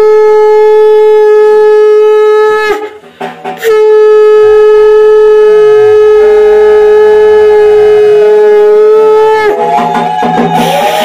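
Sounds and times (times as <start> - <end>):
conch shell blown in long note: 0.0 - 11.0.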